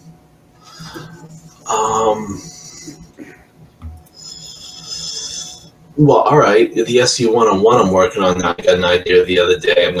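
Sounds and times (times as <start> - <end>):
person breathing out: 0.6 - 1.3.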